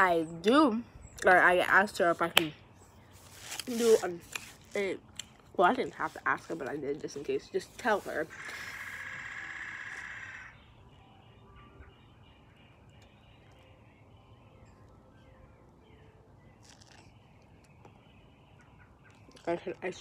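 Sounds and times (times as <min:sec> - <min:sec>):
faint outdoor ambience: 0:00.0 - 0:20.0
bird chirps: 0:07.6 - 0:19.7
steady high tone: 0:07.7 - 0:15.1.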